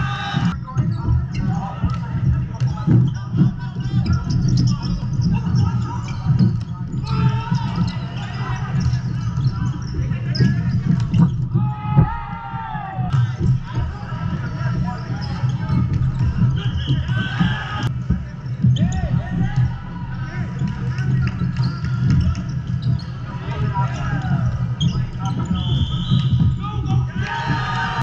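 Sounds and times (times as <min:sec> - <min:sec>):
distant voices of players: 0:00.0 - 0:28.0
volleyball bouncing on court: 0:00.4 - 0:12.3.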